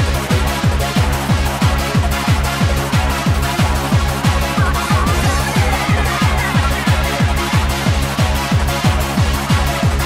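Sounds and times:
fast hardcore dance music: 0.0 - 10.0
pitch-falling kick drum: 0.0 - 10.0.

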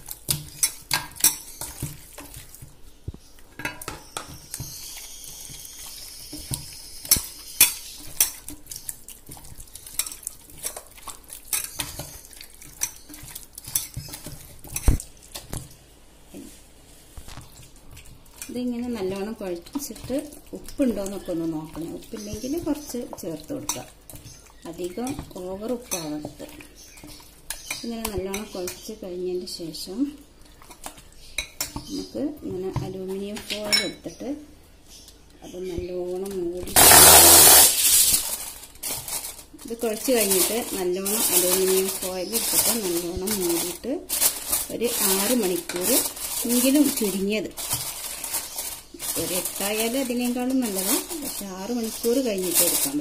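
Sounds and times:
meat squishing: 0.0 - 28.9, 29.9 - 32.0, 36.1 - 53.0
aluminium foil crinkling: 4.4 - 15.7, 16.3 - 27.8, 36.2 - 53.0.

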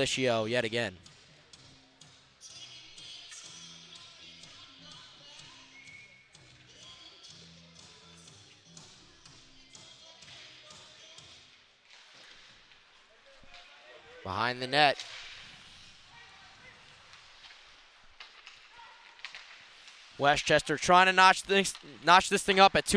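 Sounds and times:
music over pa speakers: 0.0 - 11.6.

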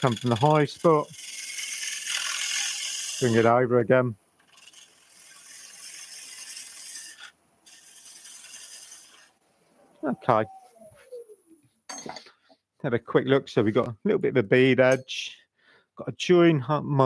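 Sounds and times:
gouge cutting wood on lathe: 0.0 - 3.5, 4.4 - 9.4.

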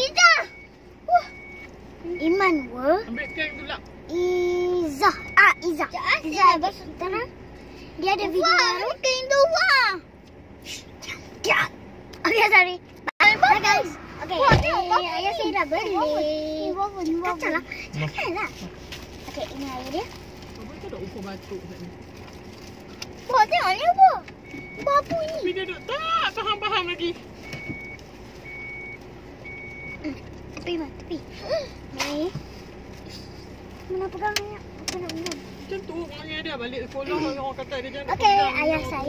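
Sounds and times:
children calling out and chattering: 0.0 - 3.2, 8.0 - 18.8
low vehicle hum: 0.0 - 39.0
high electronic beeps: 0.4 - 3.8, 24.4 - 30.0.

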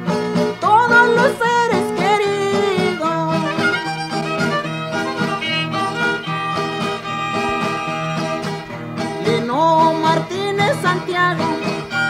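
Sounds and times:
rhythmic guitar: 0.0 - 12.0
violin melody: 0.1 - 12.0.

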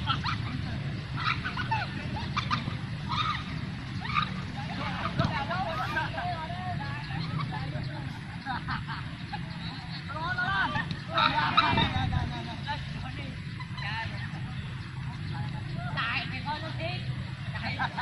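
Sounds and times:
distant footballers shouting: 0.0 - 18.0.

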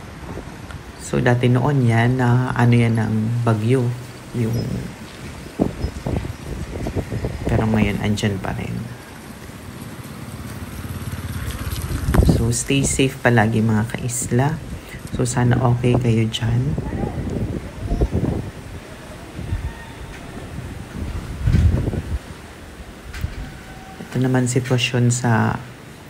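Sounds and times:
wind gusting across microphone: 0.0 - 26.0
motorcycle engine running: 5.6 - 12.6.

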